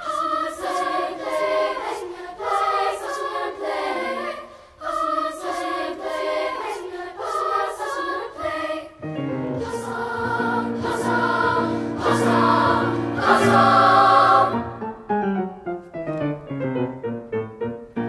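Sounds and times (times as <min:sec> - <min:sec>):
children's choir singing: 0:00.0 - 0:15.1
low piano notes: 0:14.4 - 0:18.0.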